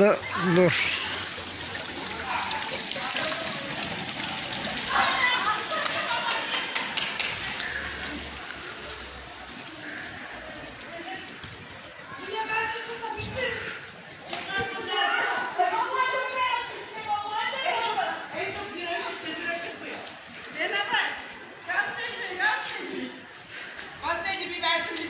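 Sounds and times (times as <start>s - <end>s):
voices calling out: 0.0s - 25.0s.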